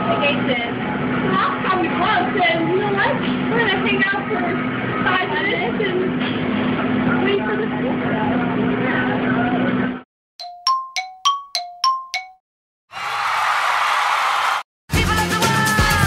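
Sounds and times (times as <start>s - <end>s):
quick metallic dings: 10.4s - 12.4s.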